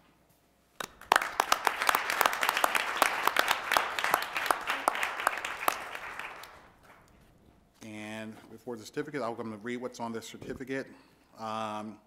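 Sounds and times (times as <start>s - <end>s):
group applause: 0.8s - 7.3s.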